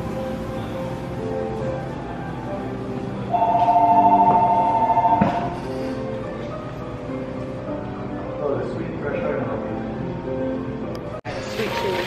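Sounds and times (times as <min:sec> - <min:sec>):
background music: 0:00.0 - 0:12.0
two-note electronic tone: 0:03.3 - 0:05.6.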